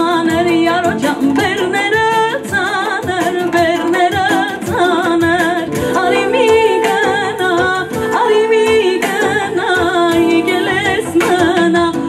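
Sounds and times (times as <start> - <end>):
instrumental backing with steady beat: 0.0 - 12.0
woman singing into a microphone: 0.0 - 12.0.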